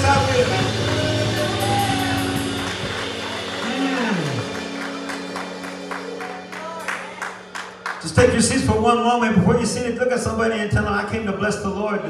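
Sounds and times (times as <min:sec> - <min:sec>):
low note sliding down: 0:00.0 - 0:06.6
worship band holding a chord: 0:00.0 - 0:10.1.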